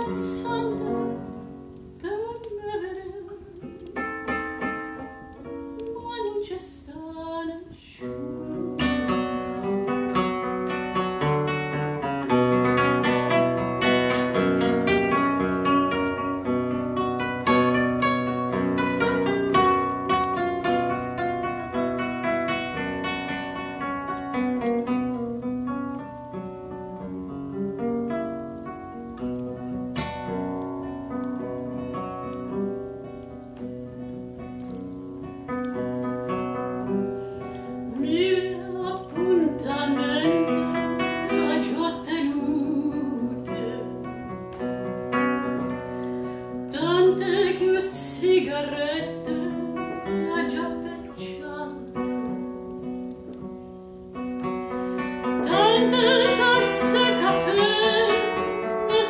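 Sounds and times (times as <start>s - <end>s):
classical guitar playing: 0.0s - 59.0s.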